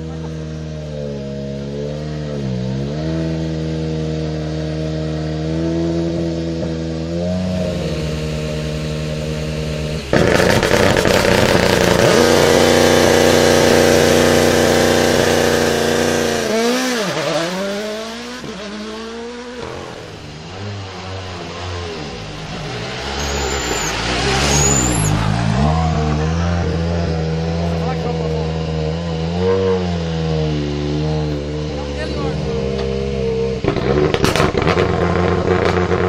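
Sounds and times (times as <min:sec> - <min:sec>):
car engine idling and revving: 0:00.0 - 0:36.0
car engine idling with rev blips: 0:07.4 - 0:16.4.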